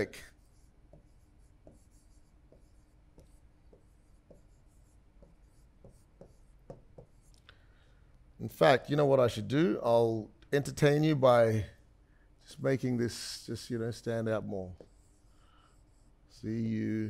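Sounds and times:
stylus scratching: 0:00.0 - 0:07.4, 0:14.8 - 0:16.5
stylus tapping on screen: 0:00.9 - 0:07.4.

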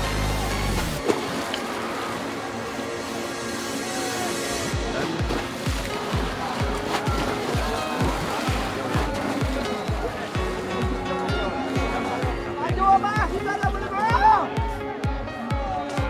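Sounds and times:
music with fast beat: 0:04.7 - 0:16.0.

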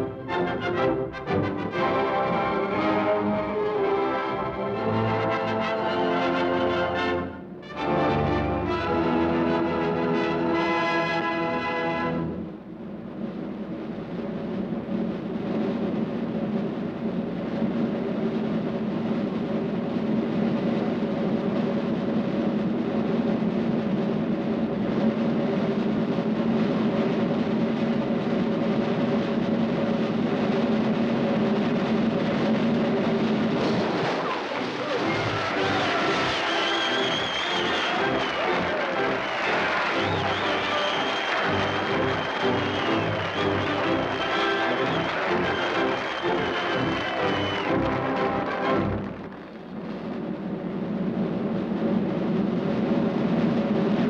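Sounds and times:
brass fanfare: 0:00.0 - 0:12.5, 0:34.7 - 0:49.3
orchestral music: 0:00.0 - 0:12.7, 0:33.0 - 0:49.5
timpani roll: 0:00.0 - 0:54.0.

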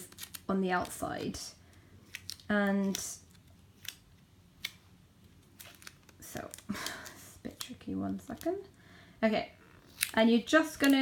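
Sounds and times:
sticky tape rustling: 0:00.0 - 0:08.7, 0:09.8 - 0:11.0.

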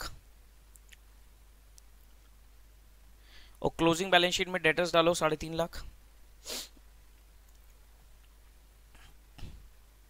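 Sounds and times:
man sniffing: 0:06.4 - 0:06.8.

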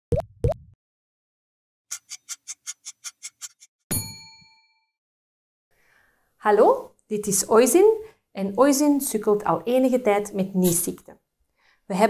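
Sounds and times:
bell-like ding: 0:03.9 - 0:04.9.

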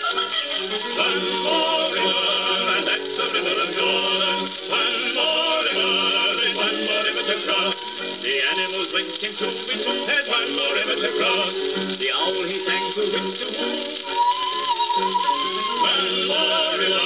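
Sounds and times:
wavering vocal lines: 0:00.0 - 0:14.1, 0:14.7 - 0:17.0
gramophone record band music: 0:00.0 - 0:17.0.

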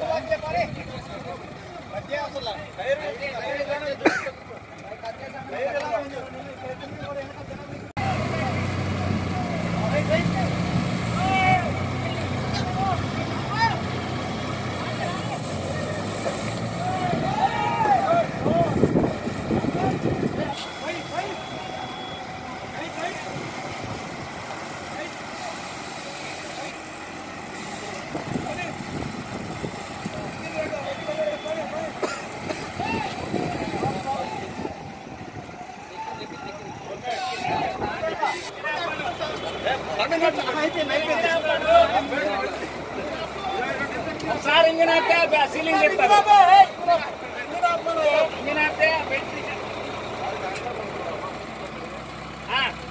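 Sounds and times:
heavy vehicle engine idling: 0:00.0 - 0:52.9
people talking and calling out: 0:00.0 - 0:52.9.

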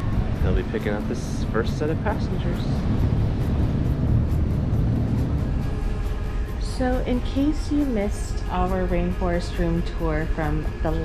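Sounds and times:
wind buffeting microphone: 0:00.0 - 0:07.1
soft background music: 0:00.0 - 0:11.0.

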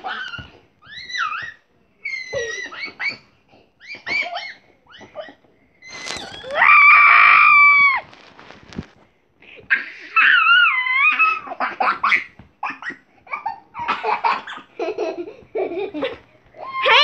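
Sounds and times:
child screaming: 0:16.6 - 0:17.0.

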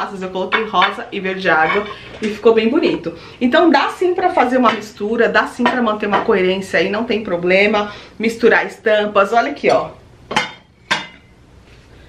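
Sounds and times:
plates clinking: 0:00.4 - 0:03.0, 0:09.7 - 0:11.3.

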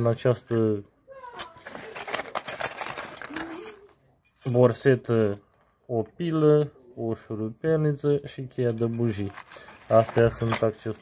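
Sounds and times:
metal hand tools clinking: 0:01.4 - 0:05.1, 0:08.7 - 0:11.0.

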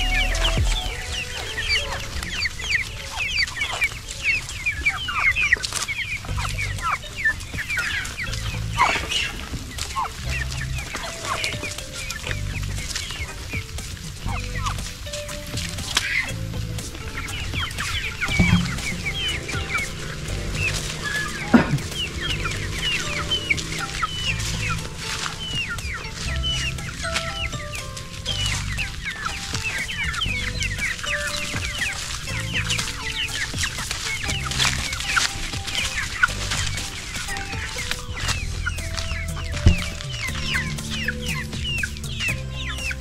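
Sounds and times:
background music: 0:00.0 - 0:43.0
chickens calling: 0:00.0 - 0:43.0.

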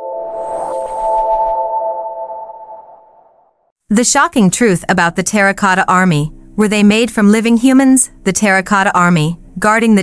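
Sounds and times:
airy whoosh: 0:00.0 - 0:03.3
electronic chord: 0:00.0 - 0:03.4.

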